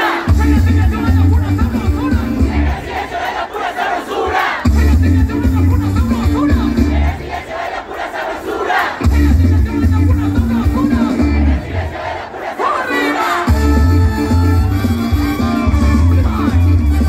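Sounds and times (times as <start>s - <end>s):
crowd shouting and singing along: 0.0s - 17.0s
live band playing bass riff: 0.3s - 2.9s, 4.6s - 7.2s, 9.0s - 11.8s, 13.3s - 17.0s.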